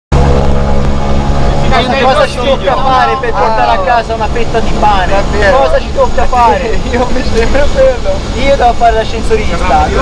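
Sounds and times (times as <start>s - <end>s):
propeller plane engine drone: 0.1s - 10.0s.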